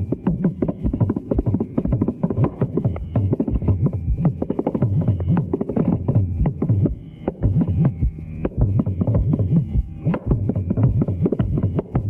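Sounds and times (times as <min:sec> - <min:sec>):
hand drums playing fast strokes: 0:00.0 - 0:12.0.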